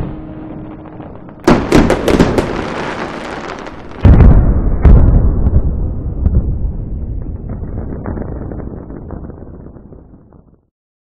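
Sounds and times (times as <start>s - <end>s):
aerial fireworks bangs: 0.0s - 10.6s.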